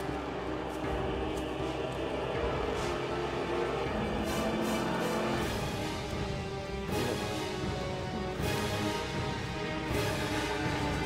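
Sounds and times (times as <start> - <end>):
dramatic background score: 0.0 - 11.0.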